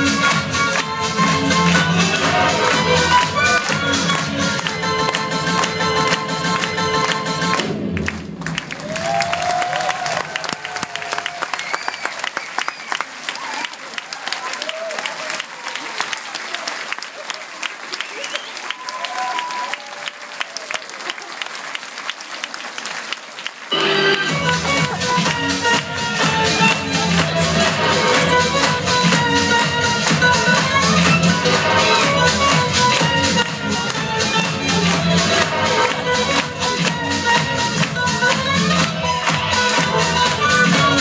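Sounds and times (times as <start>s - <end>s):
upbeat stage-show music: 0.0s - 41.0s
audience clapping: 0.1s - 41.0s.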